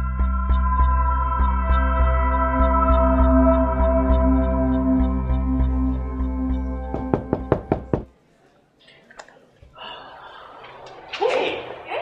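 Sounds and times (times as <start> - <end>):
knocking on a door: 6.9 - 8.1.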